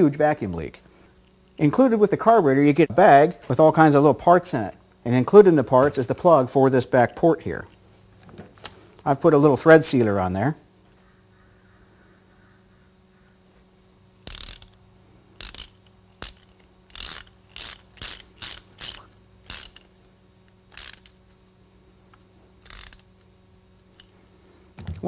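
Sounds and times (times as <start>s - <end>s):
hand ratchet clicking: 14.2s - 14.8s, 15.4s - 21.4s, 22.6s - 23.3s.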